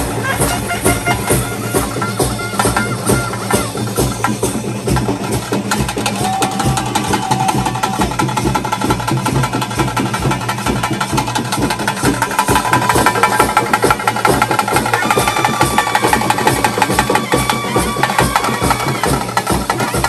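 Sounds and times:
high held melody: 0.0 - 8.8
fast dense drumming: 0.0 - 20.0.

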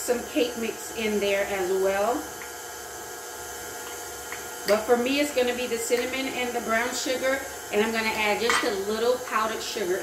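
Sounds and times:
stand mixer running: 0.0 - 10.0.

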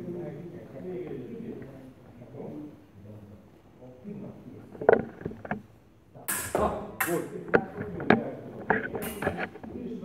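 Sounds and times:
faint voices in a hall: 0.0 - 10.0.

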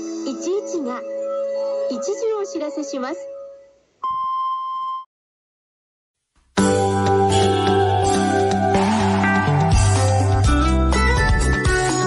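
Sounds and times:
radio time signal beep: 4.0 - 5.1.

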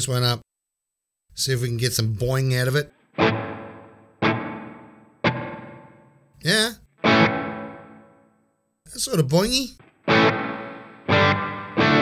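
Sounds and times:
electric guitar chords with spring reverb: 3.0 - 6.3, 6.9 - 8.4, 9.8 - 12.0.

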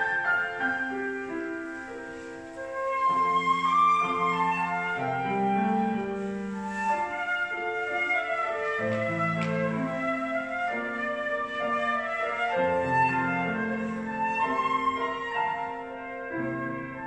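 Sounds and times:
flute and piano duet: 0.0 - 17.0.

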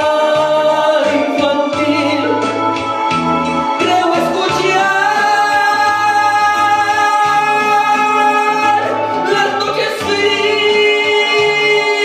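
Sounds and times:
man singing into microphone: 0.0 - 2.7, 3.7 - 12.0
karaoke backing track: 0.0 - 12.0.

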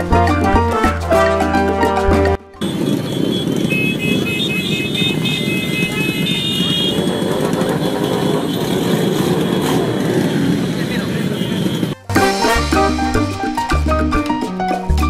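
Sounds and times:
motorcycle engines idling: 2.6 - 12.0
voices: 2.6 - 12.1.

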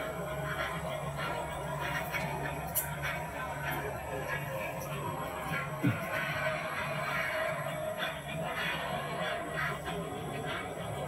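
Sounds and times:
film soundtrack music from television: 0.0 - 11.0.

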